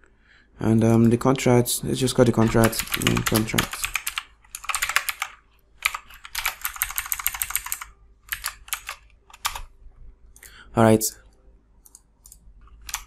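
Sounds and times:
typing on a computer keyboard: 0:02.4 - 0:09.7, 0:11.8 - 0:13.0.

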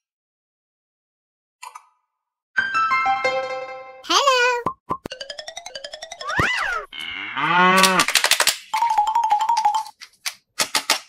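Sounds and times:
cow moo: 0:06.9 - 0:08.1.

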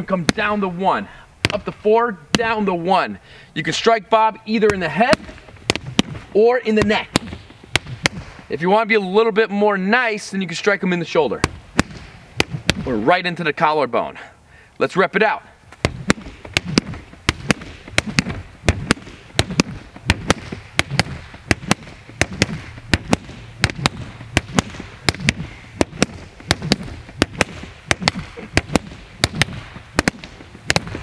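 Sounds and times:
sticks striking training dummy: 0:15.8 - 0:31.0.

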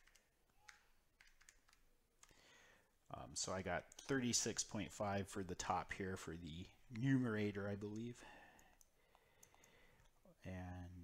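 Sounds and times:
stylus tapping tablet screen: 0:00.0 - 0:02.4, 0:06.8 - 0:10.2.

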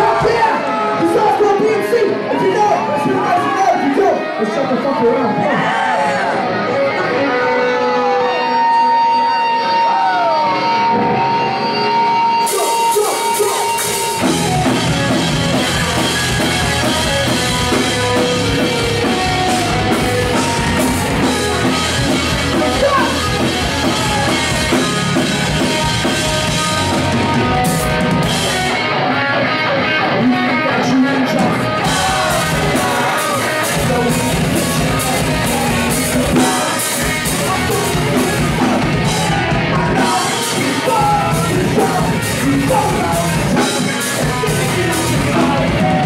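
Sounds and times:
bass guitar: 0:00.0 - 0:46.0
crowd voices: 0:00.0 - 0:46.0
electric guitars: 0:00.0 - 0:46.0
drums and cymbals: 0:12.4 - 0:28.8, 0:31.8 - 0:46.0.

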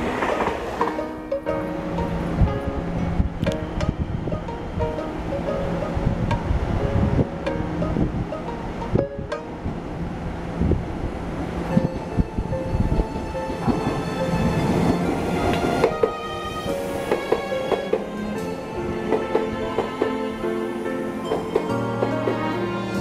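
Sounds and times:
train wheels clattering on rails: 0:00.0 - 0:06.8, 0:11.8 - 0:20.5, 0:21.2 - 0:23.0
melodic background music: 0:00.2 - 0:10.1, 0:11.6 - 0:23.0.

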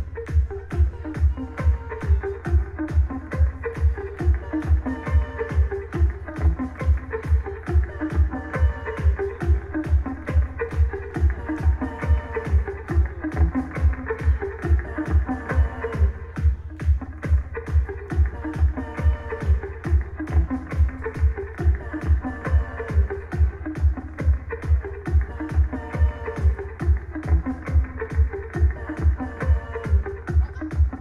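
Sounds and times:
guitar: 0:00.0 - 0:31.0
kick drum: 0:00.0 - 0:31.0.

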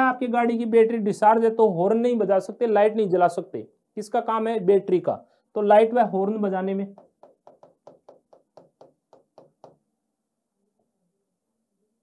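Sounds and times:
marker pen tapping on paper: 0:06.9 - 0:09.9.

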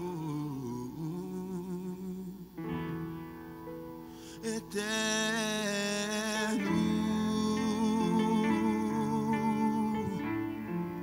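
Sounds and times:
man singing softly: 0:00.0 - 0:02.8, 0:04.2 - 0:11.0.

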